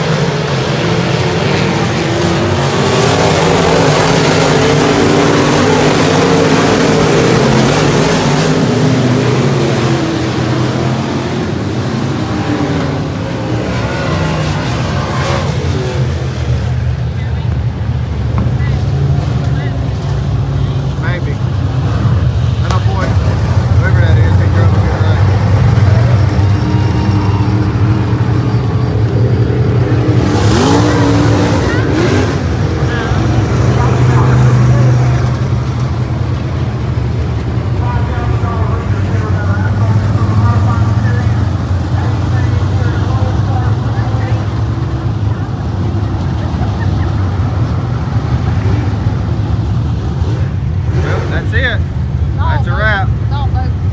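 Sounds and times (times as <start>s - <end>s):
race car engine running: 0.0s - 53.9s.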